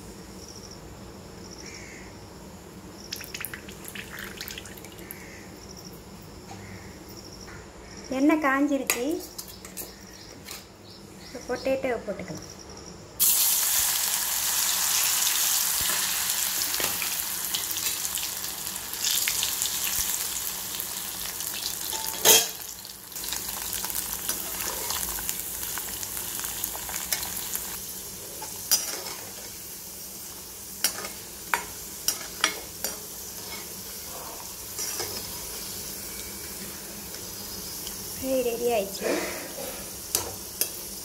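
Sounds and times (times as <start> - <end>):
potatoes sizzling in hot oil: 3.1 - 5.0, 13.2 - 41.0.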